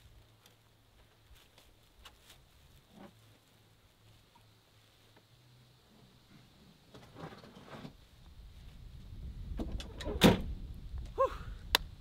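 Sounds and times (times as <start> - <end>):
tailgate slammed shut: 9.6 - 10.5.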